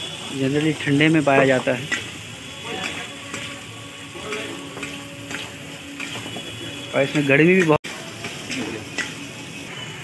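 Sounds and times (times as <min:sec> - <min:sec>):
curry sizzling in a frying pan: 0:00.0 - 0:10.0.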